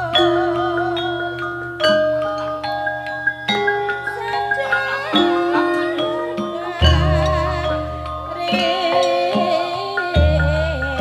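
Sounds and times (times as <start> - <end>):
gamelan playing: 0.0 - 11.0.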